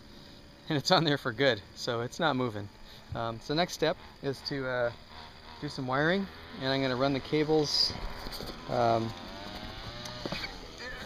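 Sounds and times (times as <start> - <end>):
man humming: 10.8 - 11.0.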